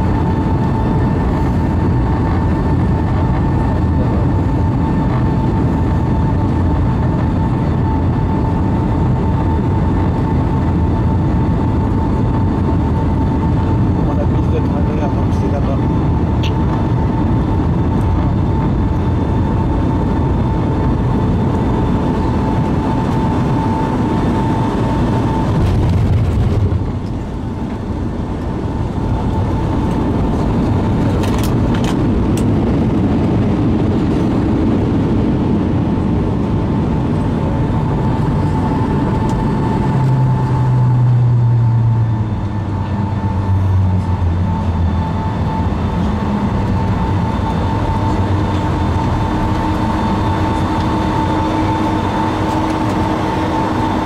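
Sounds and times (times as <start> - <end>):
jet engines and airflow rumble: 0.0 - 54.0
low engine hum: 0.0 - 54.0
steady whine: 0.0 - 54.0.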